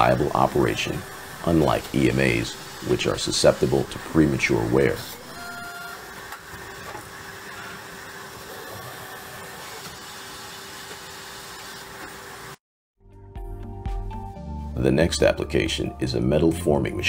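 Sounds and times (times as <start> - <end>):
packaging machine running: 0.0 - 12.6.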